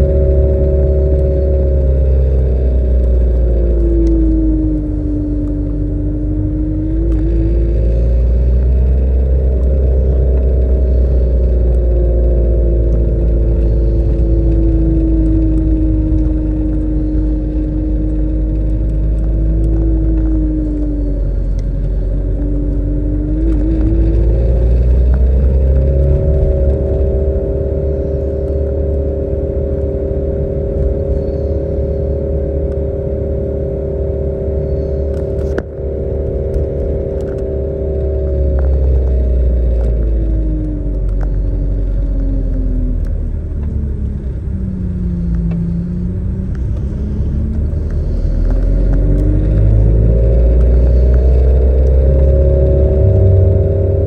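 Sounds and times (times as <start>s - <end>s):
car engine hum: 0.0s - 54.0s
road rumble: 0.0s - 54.0s.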